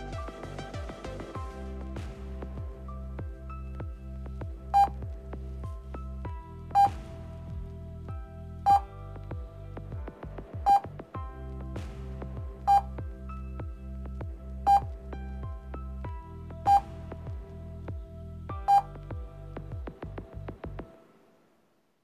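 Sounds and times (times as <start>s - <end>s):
background music: 0.0s - 21.4s
short electronic beep: 6.8s - 7.0s, 12.7s - 12.9s, 16.7s - 16.9s.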